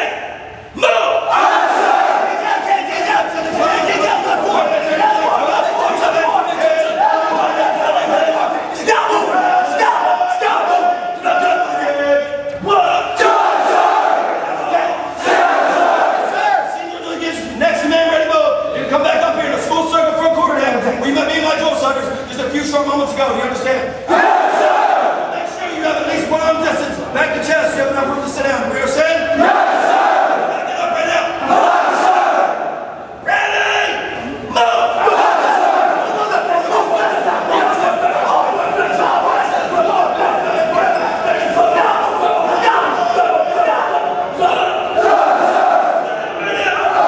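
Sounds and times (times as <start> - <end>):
people shouting loudly: 0.0 - 11.8, 12.7 - 16.8, 24.1 - 25.3, 29.4 - 32.7, 33.3 - 47.0.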